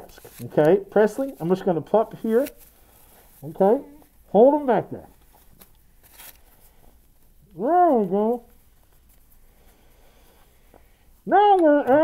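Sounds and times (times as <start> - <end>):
masks rustling: 0.0 - 12.0.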